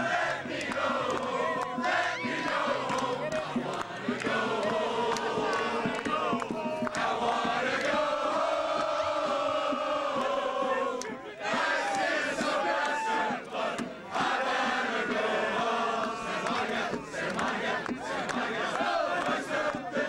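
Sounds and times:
crowd cheering and chanting: 0.0 - 20.0.

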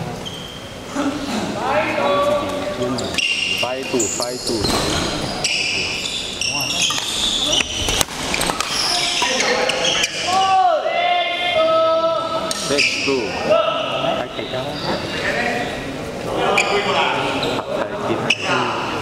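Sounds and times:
shoes squeaking on court floor: 0.0 - 0.8, 2.4 - 10.3, 14.4 - 17.7.

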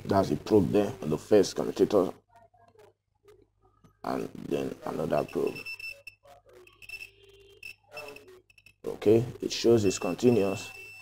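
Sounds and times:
multimeter buzzer beeping: 5.2 - 8.9, 10.0 - 11.0.

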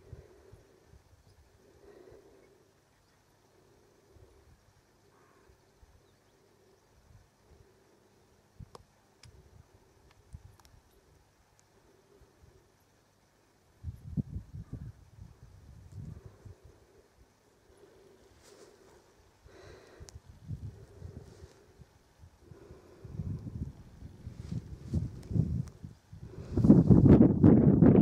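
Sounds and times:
wind buffeting microphone: 23.0 - 28.0.

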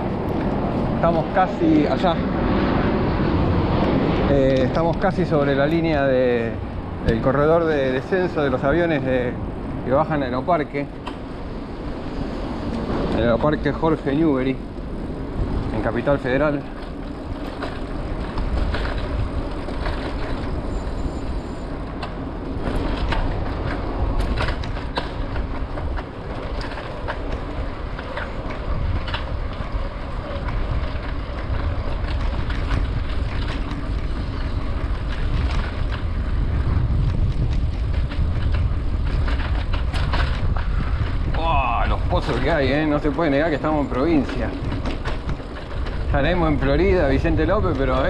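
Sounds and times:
bike rattling over asphalt: 0.0 - 48.0
bike tyres and wind rumble: 0.0 - 48.0.

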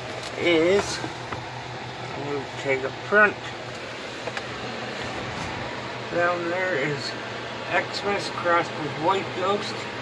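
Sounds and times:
electric fan whooshing: 0.0 - 10.0.

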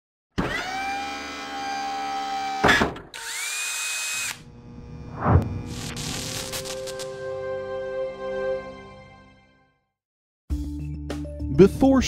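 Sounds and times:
power tool whine: 0.4 - 7.2.

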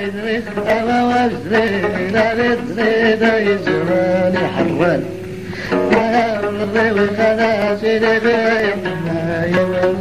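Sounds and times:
person singing ornamented melody: 0.0 - 10.0
plucked lute: 0.0 - 10.0.

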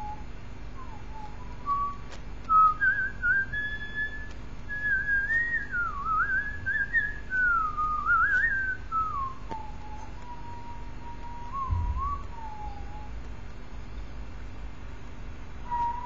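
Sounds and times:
person whistling a melody: 0.0 - 0.2, 0.8 - 13.2, 15.6 - 16.0.

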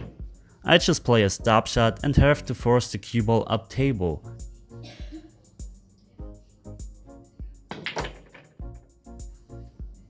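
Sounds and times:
background music with steady beat: 0.0 - 10.0
pool balls clicking: 7.7 - 8.9.

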